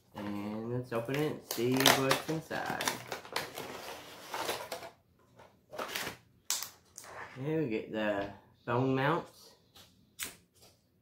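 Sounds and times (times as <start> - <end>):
cardboard packaging rustling: 0.1 - 6.2.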